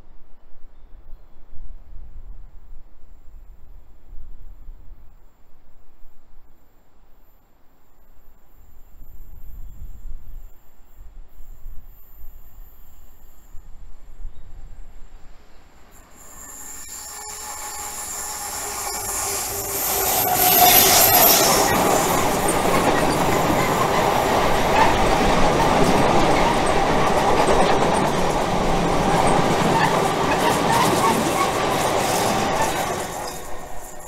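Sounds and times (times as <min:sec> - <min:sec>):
diesel locomotive passing: 0:15.3 - 0:34.0
train wheel rumble: 0:15.9 - 0:34.0
wheel squeal: 0:16.0 - 0:28.2, 0:29.0 - 0:34.0
rail-joint clatter: 0:16.0 - 0:34.0.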